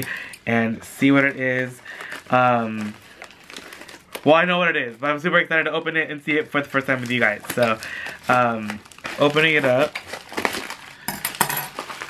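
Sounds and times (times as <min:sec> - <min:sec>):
plastic mailer crinkling: 0:00.9 - 0:12.0.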